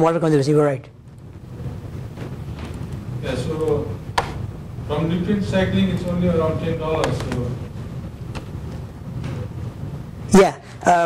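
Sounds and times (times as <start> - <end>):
low steady room rumble: 0.0 - 11.0.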